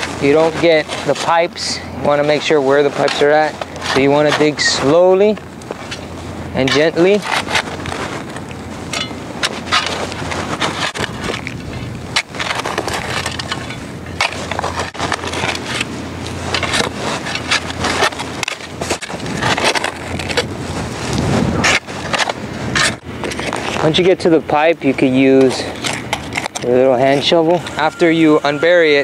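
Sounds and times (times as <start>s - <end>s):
shovel scraping gravelly soil: 0.0s - 29.0s
steady low hum: 0.0s - 29.0s.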